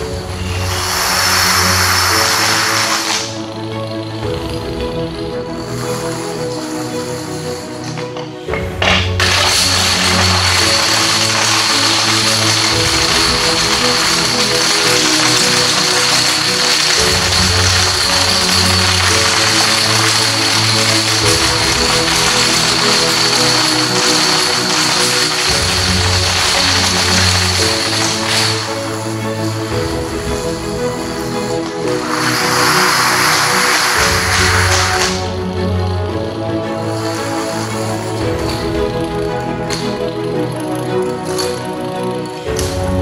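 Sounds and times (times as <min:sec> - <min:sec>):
plastic dominoes toppling: 0:00.0 - 0:04.6, 0:05.6 - 0:42.9.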